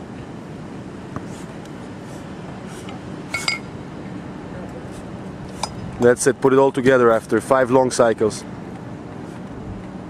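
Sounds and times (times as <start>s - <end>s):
steady background noise: 0.0s - 10.0s
kettlebells clinking together: 3.3s - 3.7s.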